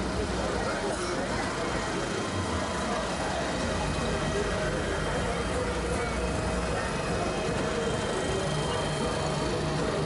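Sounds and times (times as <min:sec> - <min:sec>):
people's voices: 0:00.0 - 0:10.0
tractor diesel engine running: 0:00.0 - 0:10.0.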